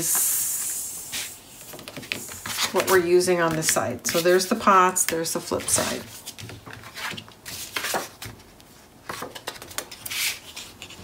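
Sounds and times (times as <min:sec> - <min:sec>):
paper rustles and scrapes: 0:05.4 - 0:08.4, 0:09.1 - 0:11.0.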